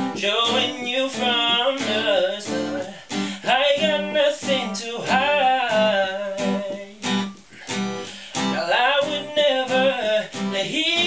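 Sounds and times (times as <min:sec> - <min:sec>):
man singing wordless vocal run: 0:00.0 - 0:07.2, 0:08.1 - 0:11.0
acoustic guitar: 0:00.0 - 0:11.0.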